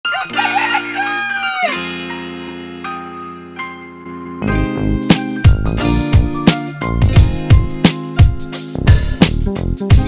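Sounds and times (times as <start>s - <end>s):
rooster crowing: 0.0s - 1.8s
music with held chords: 0.1s - 10.0s.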